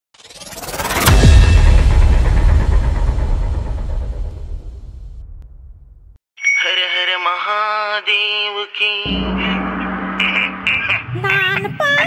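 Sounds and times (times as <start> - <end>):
deep cinematic boom rumble: 0.8 - 6.2, 9.1 - 11.5.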